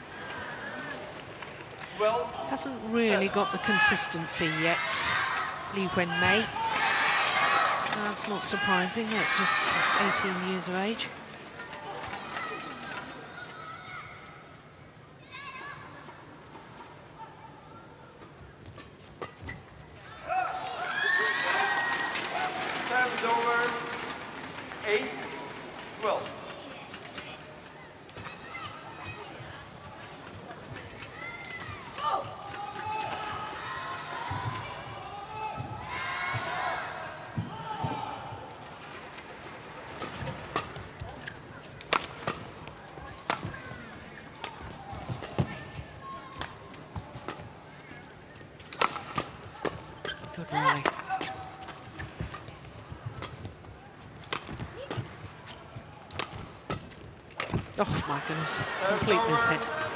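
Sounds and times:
murmur of voices: 0:00.0 - 0:13.6, 0:21.8 - 0:59.9.

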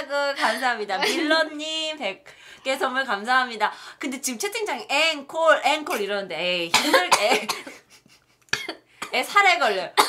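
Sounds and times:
woman coughing: 0:06.7 - 0:07.9, 0:08.5 - 0:10.0.

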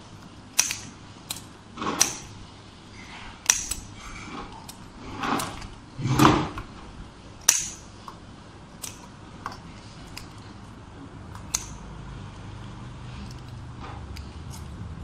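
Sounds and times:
scissors snipping paper: 0:00.0 - 0:02.4, 0:03.0 - 0:06.8, 0:08.8 - 0:10.5, 0:13.2 - 0:14.8.

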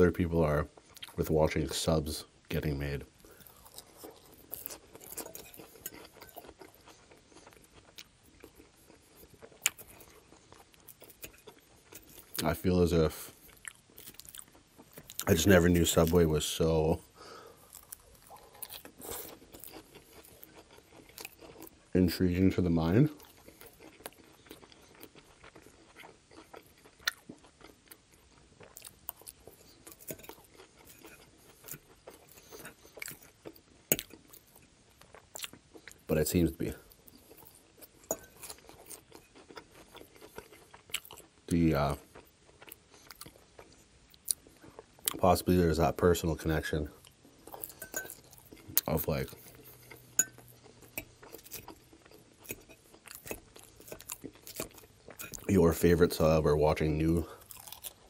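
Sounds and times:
chewing crunchy salad: 0:00.2 - 0:01.8, 0:02.5 - 0:58.0
metal fork clinking glass bowl: 0:38.1 - 0:38.4, 0:47.7 - 0:48.2, 0:50.2 - 0:50.4.

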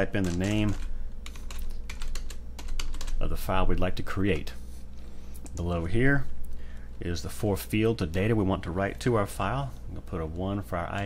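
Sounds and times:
computer keyboard typing: 0:00.0 - 0:03.2.

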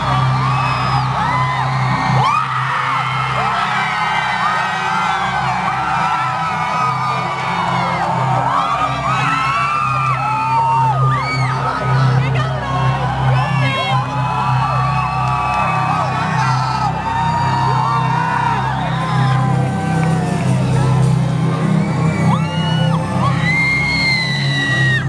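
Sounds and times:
crowd cheering and whooping: 0:00.0 - 0:25.0.

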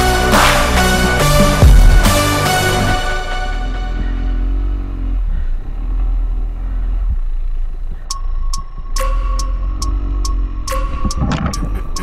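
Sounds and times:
heavy low rumble: 0:00.0 - 0:12.0
dirt bike engine running: 0:01.4 - 0:08.8.

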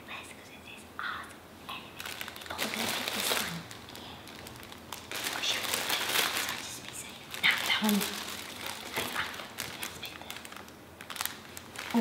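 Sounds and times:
plastic bags crinkling: 0:02.0 - 0:12.0.

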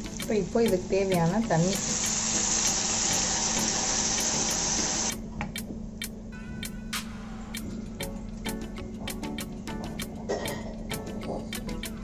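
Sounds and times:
water sizzling in a hot pan: 0:00.0 - 0:05.1.

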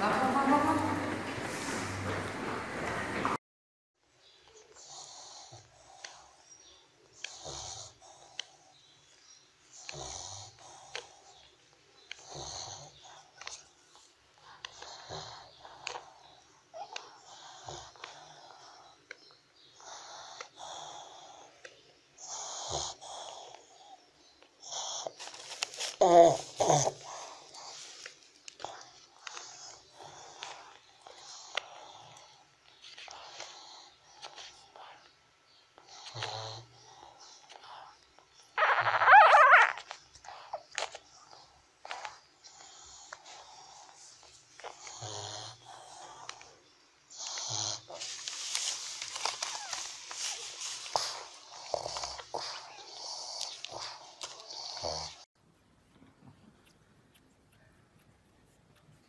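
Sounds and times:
puppies wheezy snoring breaths: 0:04.4 - 0:55.4
puppy whimper: 0:38.6 - 0:39.8, 0:49.4 - 0:49.8
puppy wavering squeal: 0:38.6 - 0:39.9.

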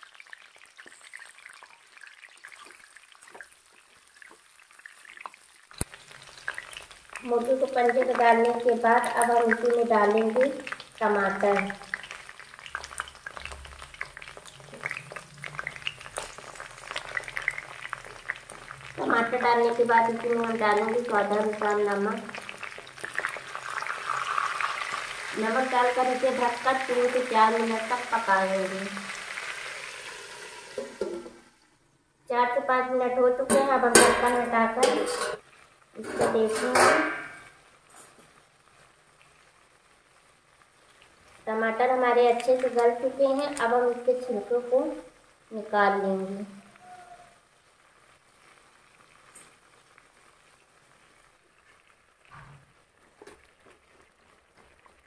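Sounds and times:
crackles and pops in pan: 0:00.0 - 0:31.5, 0:33.4 - 0:55.0
food sizzling in hot oil: 0:00.0 - 0:55.0
metal pan lid clanking and scraping: 0:33.5 - 0:35.4, 0:36.0 - 0:37.5.

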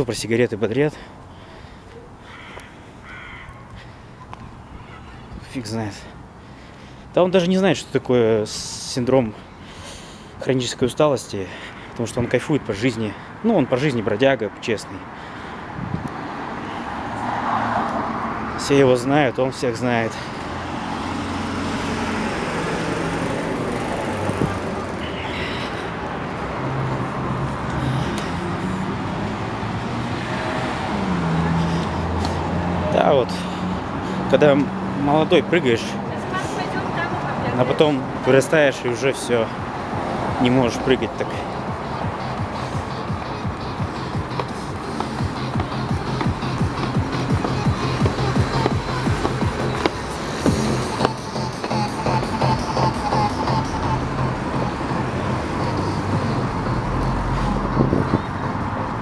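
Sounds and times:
street traffic: 0:00.0 - 0:59.0
vehicle engine hum: 0:15.0 - 0:59.0
music with low bass line: 0:41.6 - 0:58.2.

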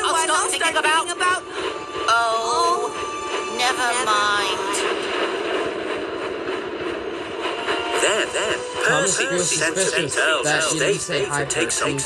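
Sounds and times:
train running on rails: 0:00.0 - 0:12.0.

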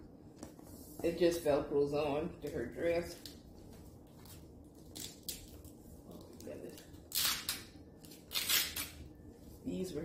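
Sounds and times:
velcro ripping apart: 0:07.1 - 0:09.0.

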